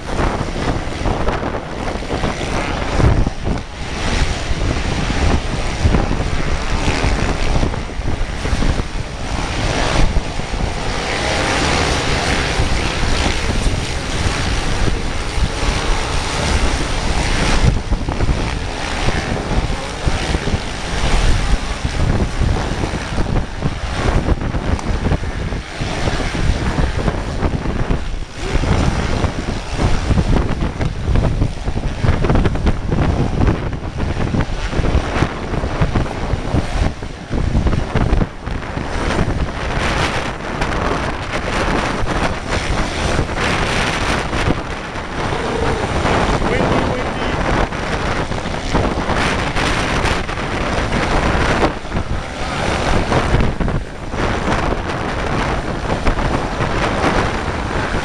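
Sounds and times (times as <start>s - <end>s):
distant motorcycles racing: 0.0s - 58.0s
wind buffeting microphone: 0.0s - 58.0s.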